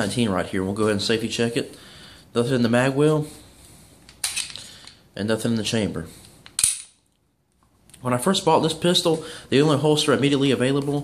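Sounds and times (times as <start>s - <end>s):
pistol slide snapping forward: 6.4s - 7.0s.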